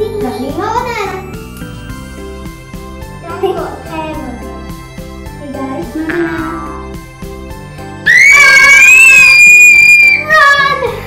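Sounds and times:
background music: 0:00.0 - 0:11.0
child screaming: 0:08.0 - 0:11.0.

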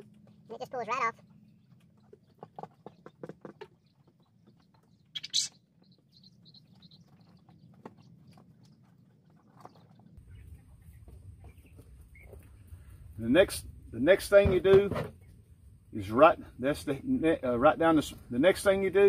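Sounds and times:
faint quail chirps: 0:00.2 - 0:13.0.

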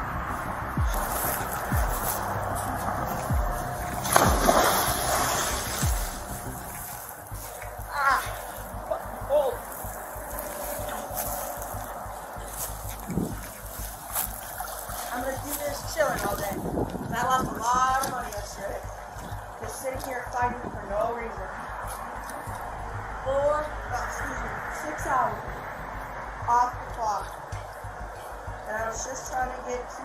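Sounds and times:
water splashing in pool: 0:00.8 - 0:20.3.

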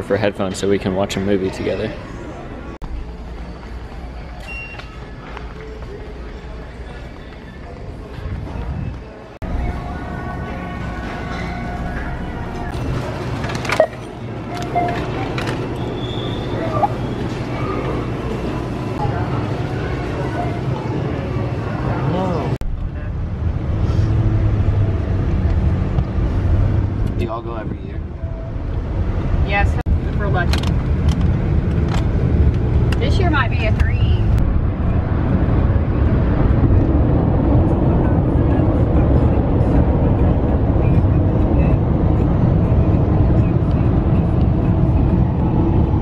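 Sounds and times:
store interior hum: 0:00.0 - 0:46.0
brief high beep: 0:04.4 - 0:05.0, 0:13.8 - 0:15.1
car cabin road noise: 0:08.0 - 0:23.7, 0:24.5 - 0:46.0.

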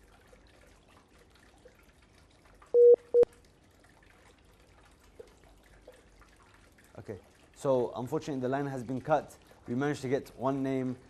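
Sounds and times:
short telephone line beeps: 0:02.8 - 0:03.3.

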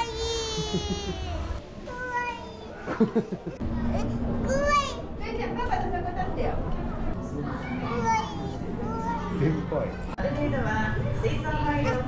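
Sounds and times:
child's voice: 0:00.0 - 0:03.1, 0:03.8 - 0:05.4, 0:07.6 - 0:09.4
chatter of children and adults: 0:01.0 - 0:12.0.

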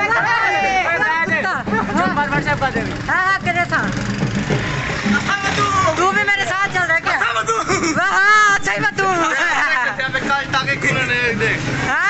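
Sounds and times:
young men talking and calling out: 0:00.0 - 0:12.0.

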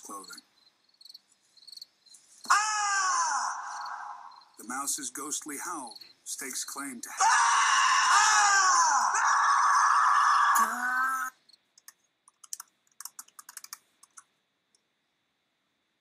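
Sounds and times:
mouse howling high call: 0:02.5 - 0:04.5, 0:07.2 - 0:11.3.

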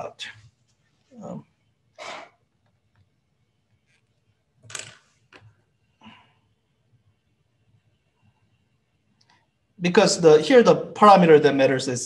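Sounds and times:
quiet room hum: 0:00.0 - 0:12.0.

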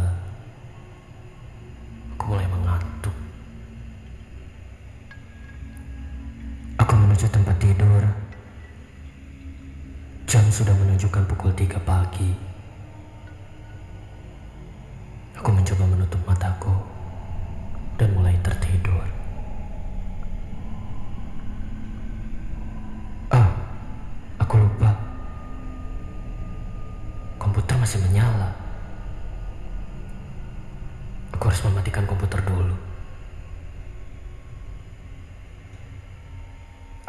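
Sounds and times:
low ambient drone: 0:00.0 - 0:37.0
steady high tone: 0:00.0 - 0:37.0.

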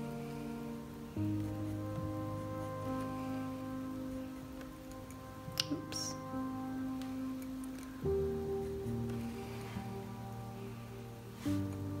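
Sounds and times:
soft background music: 0:00.0 - 0:12.0
pencil scratching on paper: 0:01.2 - 0:06.4.

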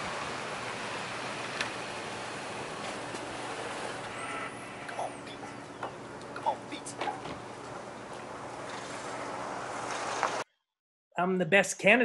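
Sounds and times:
road traffic noise: 0:00.0 - 0:10.4.

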